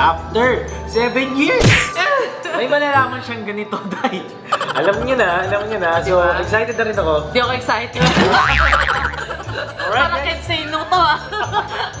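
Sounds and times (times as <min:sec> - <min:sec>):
comic boing sound effect: 0:08.0 - 0:09.5
upbeat background music: 0:08.0 - 0:09.9.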